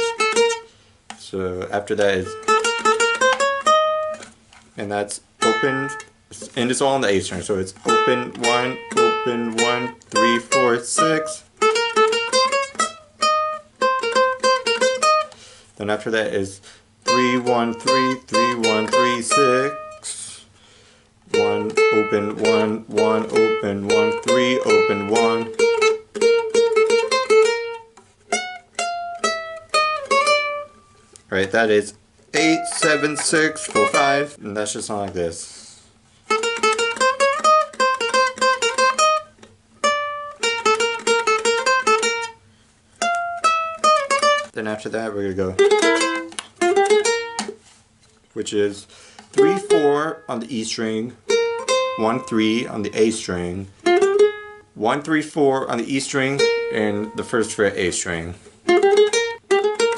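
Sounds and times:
ukulele notes plucked: 0:00.0 - 0:04.3, 0:05.4 - 0:06.7, 0:07.3 - 0:15.4, 0:17.0 - 0:20.4, 0:21.3 - 0:31.6, 0:32.4 - 0:34.4, 0:36.3 - 0:42.4, 0:43.0 - 0:44.6, 0:45.4 - 0:47.7, 0:49.3 - 0:59.9.

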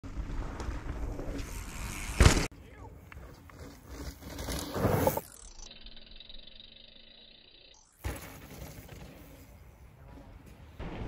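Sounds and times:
trail ambience: 0:00.0 - 0:11.0
mountain bike landing a jump: 0:00.1 - 0:02.5, 0:03.6 - 0:05.5, 0:07.8 - 0:09.6.

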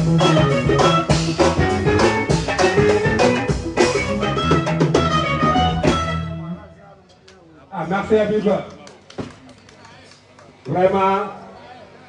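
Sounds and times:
live band with drums and guitar: 0:00.0 - 0:06.7.

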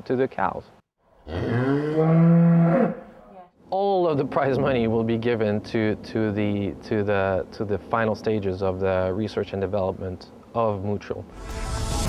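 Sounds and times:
cow mooing: 0:01.2 - 0:03.2.

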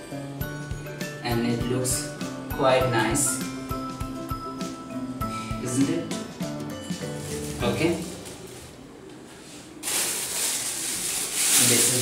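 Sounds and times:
plastic wrapping rustling: 0:06.8 - 0:12.0.

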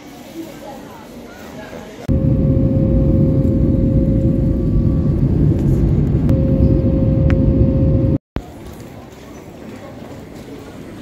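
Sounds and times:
jet engine and airflow roar: 0:02.1 - 0:08.2.

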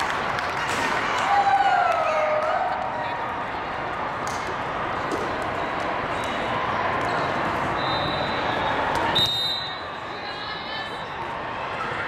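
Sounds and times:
echoing chatter: 0:00.0 - 0:12.0
shrill whistle blast: 0:07.8 - 0:09.9.

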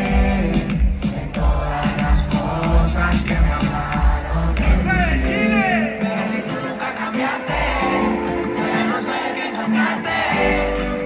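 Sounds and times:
heavy bass beat: 0:00.0 - 0:05.3
reggaeton music over sound system: 0:00.0 - 0:11.0.

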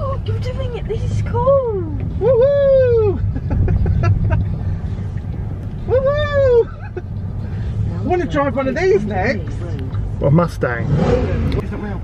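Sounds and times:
road and wind rumble in car: 0:00.0 - 0:12.0.

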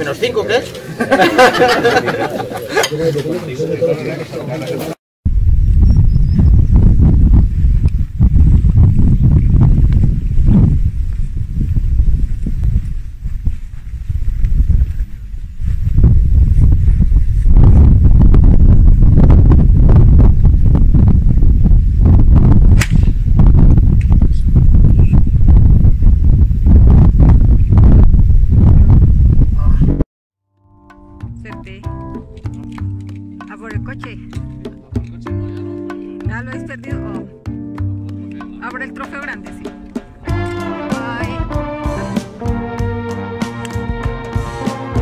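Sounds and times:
wind buffeting microphone: 0:05.3 - 0:30.0.

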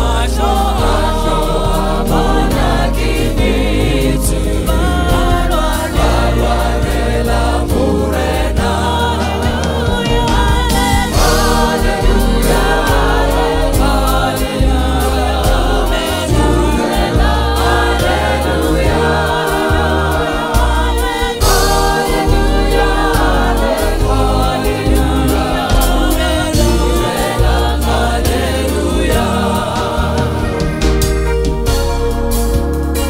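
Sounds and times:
drums with cymbals: 0:00.0 - 0:33.0
gospel choir singing: 0:00.0 - 0:33.0
heavy bass notes: 0:00.0 - 0:33.0
keyboard: 0:00.0 - 0:33.0.

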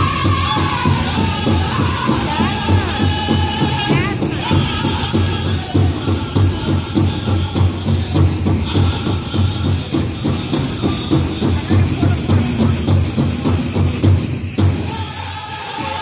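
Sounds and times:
group singing: 0:00.0 - 0:13.8, 0:14.7 - 0:16.0
big drum beat: 0:00.0 - 0:16.0.

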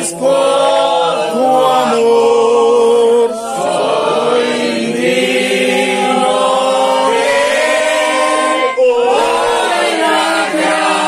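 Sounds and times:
group singing a hymn: 0:00.0 - 0:11.0.

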